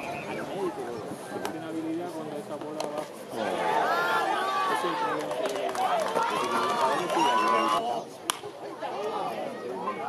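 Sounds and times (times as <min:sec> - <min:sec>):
crowd shouting: 0:03.4 - 0:08.0.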